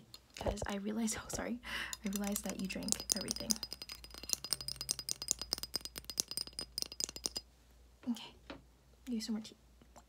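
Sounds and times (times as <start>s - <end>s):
tin teacup rattling and clicking: 1.3s - 7.5s.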